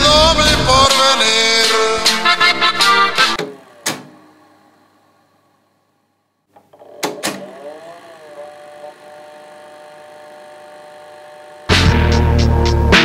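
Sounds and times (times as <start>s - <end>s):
tape mechanism clicks: 6.5s - 9.0s.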